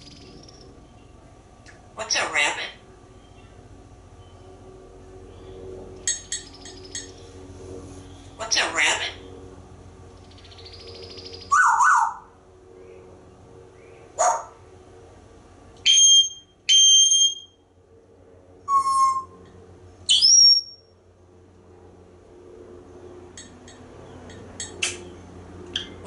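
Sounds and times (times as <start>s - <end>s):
parrot whistling and calling: 11.4s - 12.2s, 15.9s - 17.5s, 18.7s - 19.4s, 20.1s - 20.8s.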